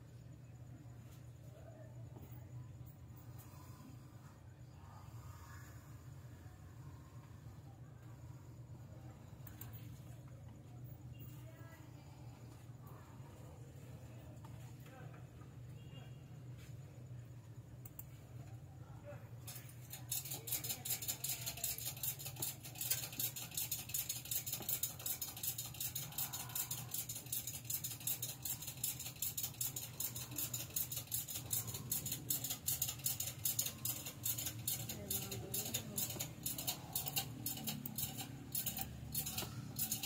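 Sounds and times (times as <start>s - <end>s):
computer clicks: 9.4s - 9.9s, 17.8s - 18.2s, 19.5s - 40.0s.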